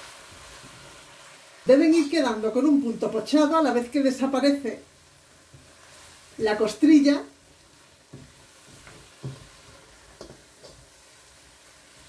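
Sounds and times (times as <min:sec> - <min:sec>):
faint sizzle: 0:00.0 - 0:12.0.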